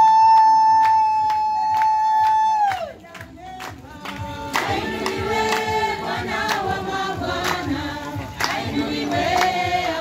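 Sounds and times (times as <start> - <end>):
rhythmic hand clapping: 0.0 - 10.0.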